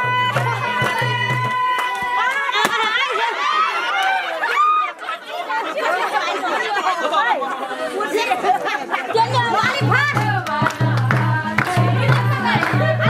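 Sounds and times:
crowd chattering: 0.0 - 13.0
music with low beat: 9.3 - 13.0.

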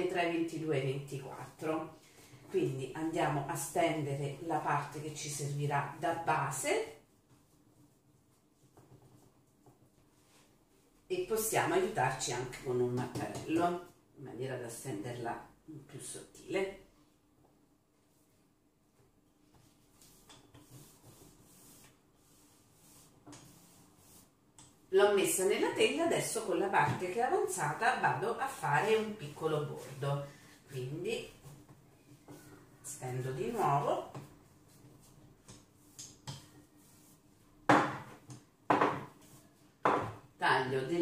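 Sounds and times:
dough rubbing on board: 4.8 - 10.6, 19.4 - 40.1
rolling pin knocking on board: 37.7 - 39.2, 39.8 - 40.2
rolling pin tapping: 39.8 - 40.2.

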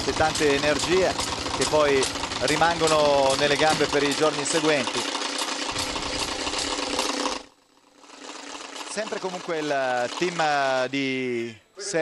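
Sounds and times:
pulsing engine-like mechanical noise: 0.0 - 11.4.

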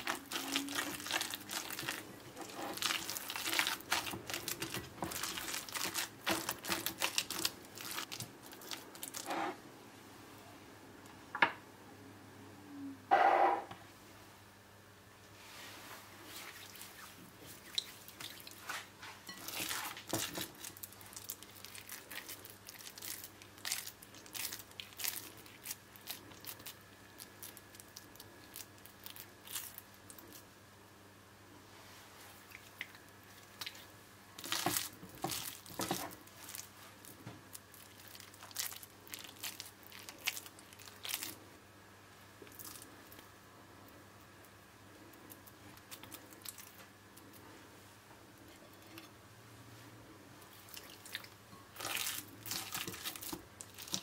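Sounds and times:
wet hand squishing mixture: 0.0 - 9.3, 16.2 - 30.5, 32.3 - 41.4, 42.4 - 43.3, 45.1 - 47.5, 50.4 - 54.0.

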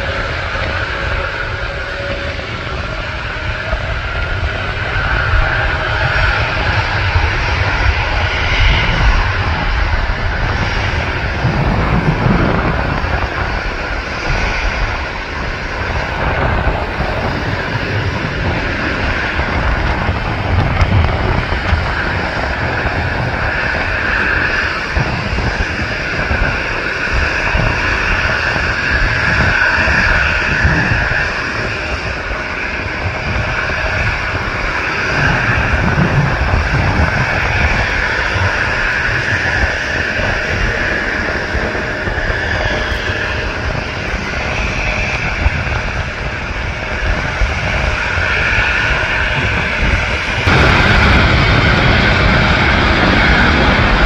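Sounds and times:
jet engine rumble at takeoff: 0.0 - 54.0.

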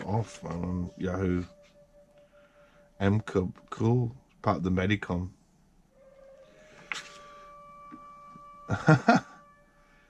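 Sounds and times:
faint electronic whine: 0.0 - 10.0
book page turning: 6.8 - 7.4.

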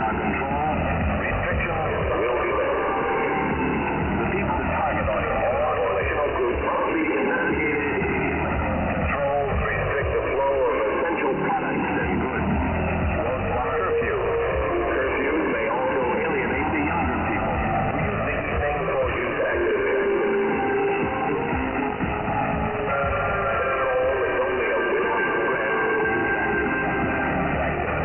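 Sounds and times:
radio static: 0.0 - 28.0
weak radio broadcast audio: 0.0 - 28.0.

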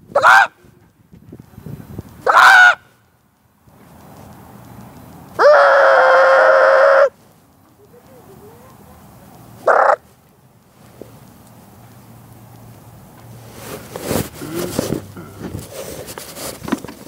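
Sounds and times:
loud fowl calls: 0.1 - 0.6, 2.2 - 3.0, 5.4 - 7.2, 9.6 - 10.0.

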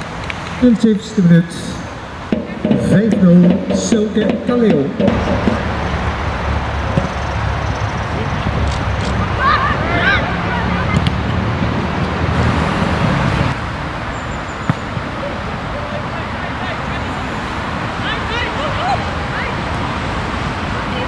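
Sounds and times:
steady rushing background noise: 0.0 - 21.0
distant players shouting: 0.6 - 12.3, 14.6 - 21.0
sharp knock: 2.3 - 5.7.

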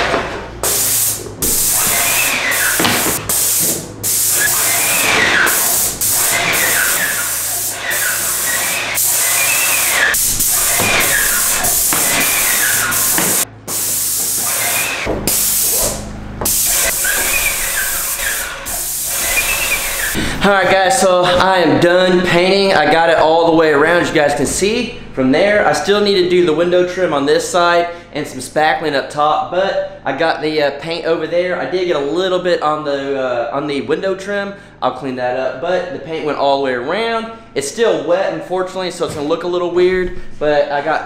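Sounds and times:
paint spray gun hissing: 0.6 - 20.2.

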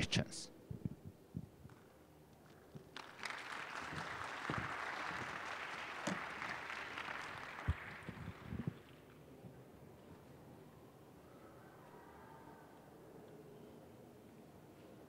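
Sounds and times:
audience applauding: 2.8 - 9.0.

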